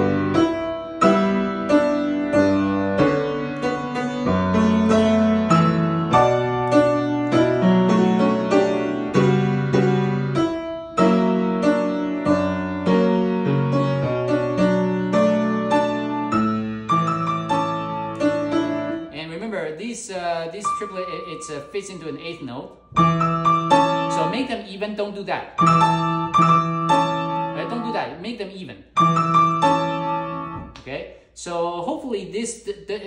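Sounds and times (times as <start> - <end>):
grand piano playing: 0.0 - 19.8, 20.4 - 24.8, 25.6 - 30.8.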